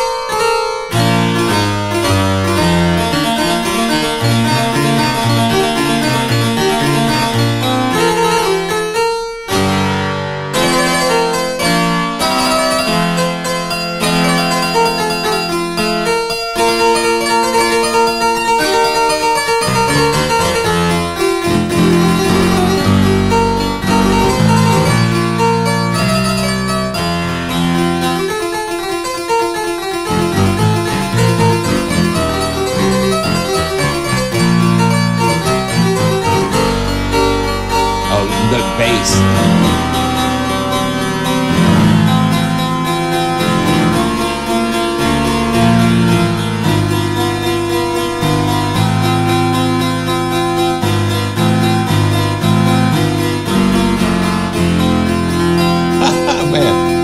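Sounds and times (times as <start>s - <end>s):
harpsichord chords and runs: 0.0s - 57.0s.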